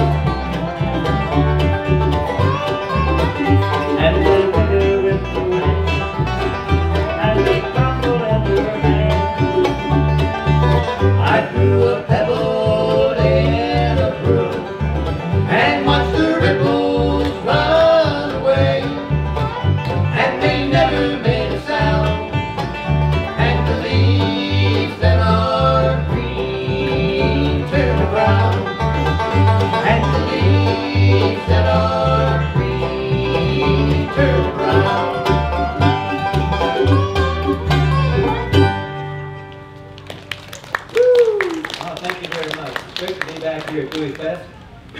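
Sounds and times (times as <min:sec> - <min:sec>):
banjo: 0:00.0 - 0:40.0
mandolin: 0:00.0 - 0:40.5
upright bass line: 0:00.0 - 0:40.7
acoustic guitar: 0:00.0 - 0:42.0.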